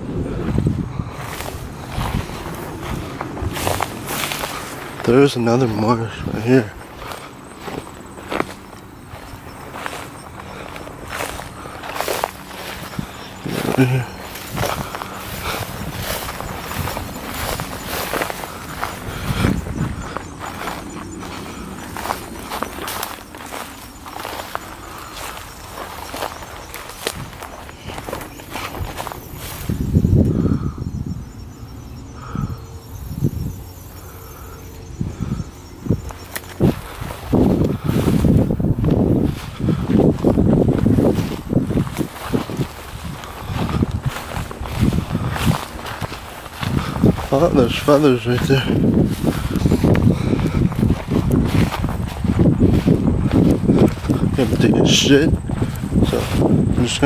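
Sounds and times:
footsteps through dry grass: 0.0 - 57.0.

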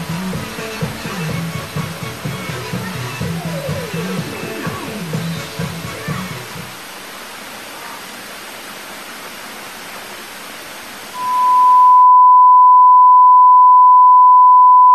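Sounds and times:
television static hissing: 0.0 - 11.2
high single-pitched beep: 11.2 - 14.9.

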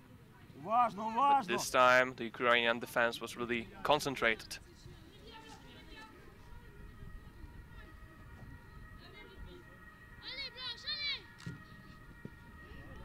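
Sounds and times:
thud: 11.4 - 12.4.

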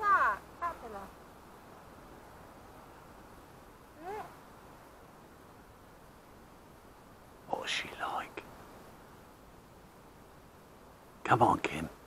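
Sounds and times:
person whispering: 7.5 - 8.4.

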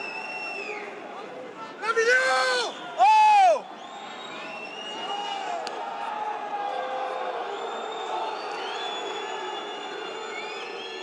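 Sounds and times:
shrill whistles: 0.0 - 1.0, 2.4 - 5.4, 7.5 - 11.0.

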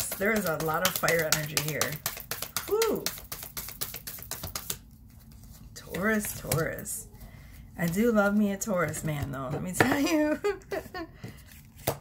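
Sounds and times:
cards being shuffled: 0.0 - 6.9, 11.4 - 12.0.

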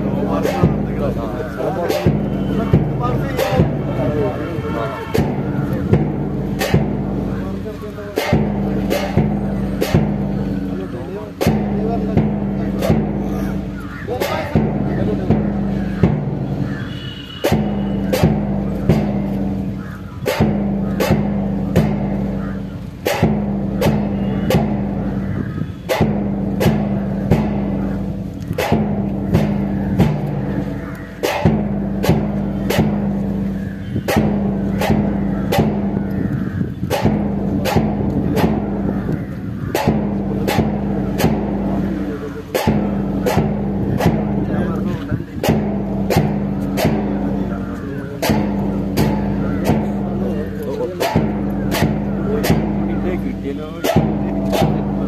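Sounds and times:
march music: 0.0 - 55.0
steady drum beat: 0.0 - 55.0.

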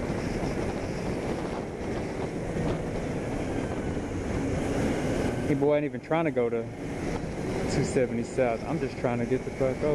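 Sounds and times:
wind rushing over microphone: 0.0 - 9.9.

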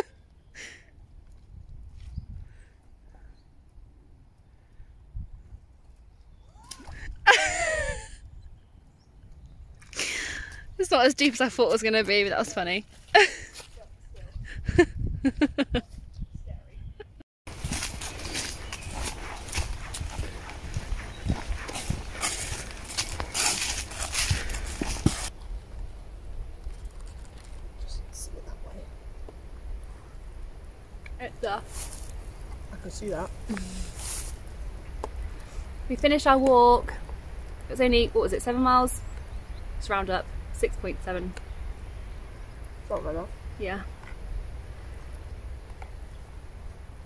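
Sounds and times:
outdoor background: 0.0 - 47.0
footsteps crunching dry leaves: 17.5 - 25.3, 31.6 - 32.4, 33.1 - 34.5
boots treading through wet mud: 17.5 - 25.4.

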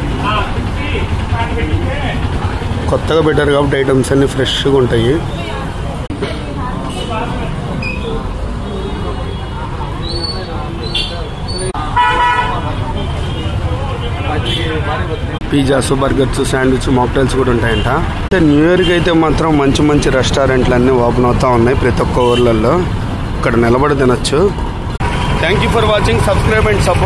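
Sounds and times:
indistinct voices: 0.0 - 27.0
road traffic rumble: 0.0 - 27.0
vehicle horn honking: 10.9 - 15.3.

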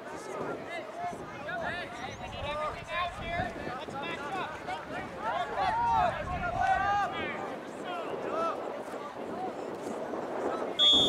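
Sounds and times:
wind rumble on microphone: 0.1 - 11.0.

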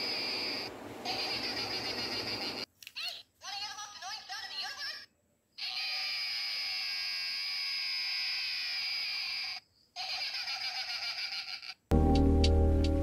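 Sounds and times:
toy high-pitched voice clip: 1.1 - 11.8.

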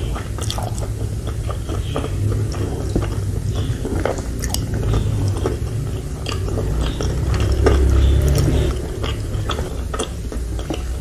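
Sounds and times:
close-miked chewing noodles: 0.0 - 11.0
wet mouth clicks and smacks: 0.1 - 11.0.

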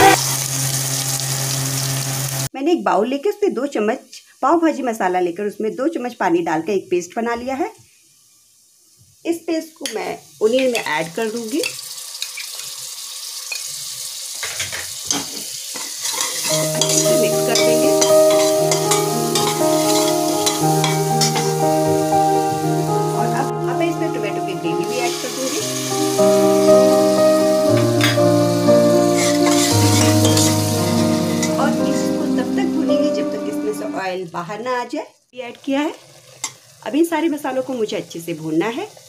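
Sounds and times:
onions sizzling in a pot: 0.0 - 39.0
spoon stirring and clicking on pot: 16.0 - 21.5
music with long held chords: 16.5 - 34.1.

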